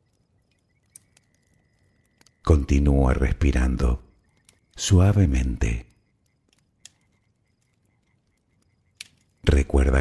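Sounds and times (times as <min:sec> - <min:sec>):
faint campfire crackle: 0:00.0 - 0:10.0.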